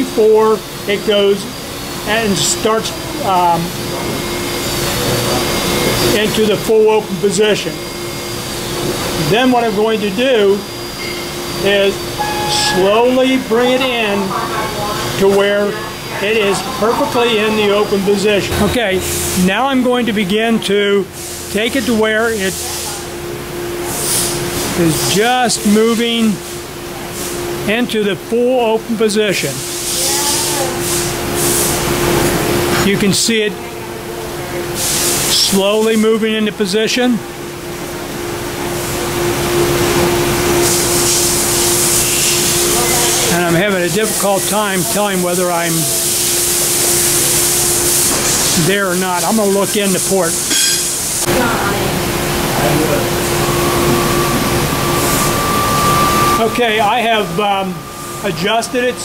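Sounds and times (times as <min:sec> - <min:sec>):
machinery hum and rushing: 0:00.0 - 0:35.8, 0:37.2 - 0:59.0
low steady tone: 0:03.9 - 0:15.4, 0:16.1 - 0:25.3, 0:52.6 - 0:59.0.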